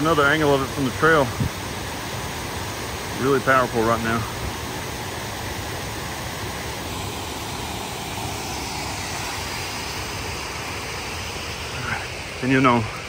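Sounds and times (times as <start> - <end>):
waterfall rushing: 0.0 - 13.0.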